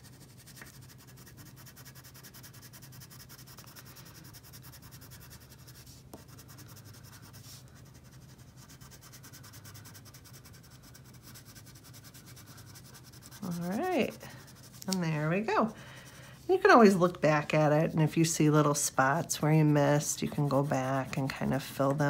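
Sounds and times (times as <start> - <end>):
crayon scribbling on paper: 0.0 - 22.0.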